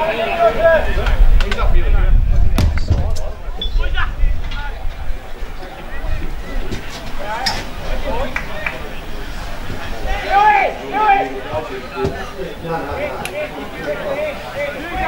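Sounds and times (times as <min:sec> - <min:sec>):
people calling and chattering: 0:00.0 - 0:15.0
low rumble on microphone: 0:00.8 - 0:07.2.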